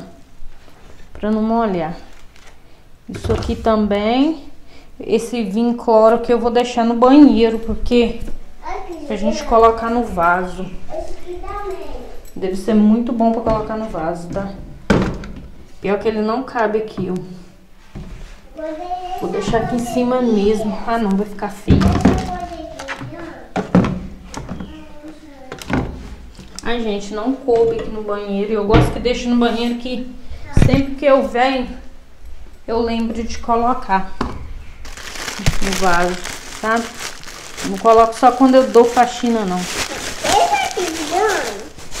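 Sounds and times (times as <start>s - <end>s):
small child babbling: 10.9s - 12.2s, 18.5s - 20.9s, 22.1s - 23.5s, 24.6s - 25.6s, 40.2s - 41.7s
low voices: 40.2s - 41.8s.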